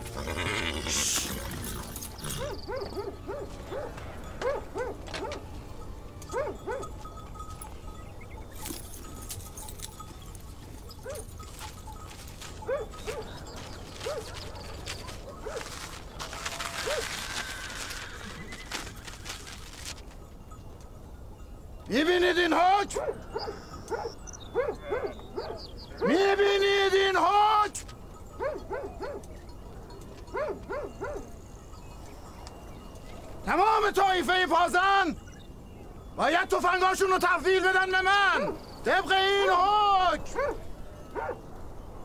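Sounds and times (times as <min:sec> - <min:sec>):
dogs barking: 0:02.2 - 0:05.6, 0:06.2 - 0:07.1, 0:10.9 - 0:17.2, 0:22.9 - 0:26.1, 0:28.3 - 0:29.4, 0:30.2 - 0:31.4, 0:38.3 - 0:38.7, 0:40.2 - 0:41.5.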